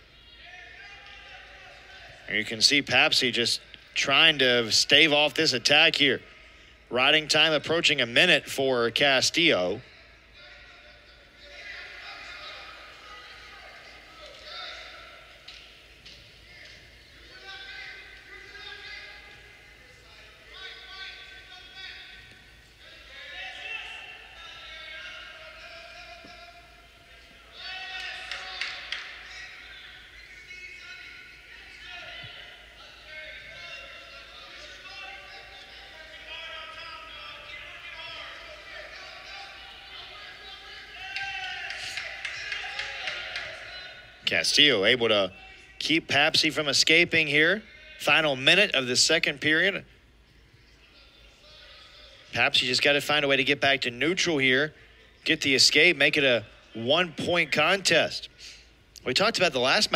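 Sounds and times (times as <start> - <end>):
echoing voices calling out: 0.0 - 59.9.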